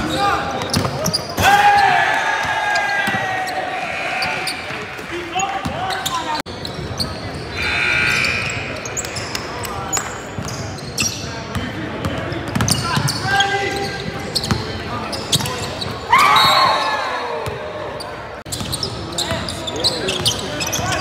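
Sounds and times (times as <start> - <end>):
people calling out: 1.4 - 5.0, 7.5 - 9.3.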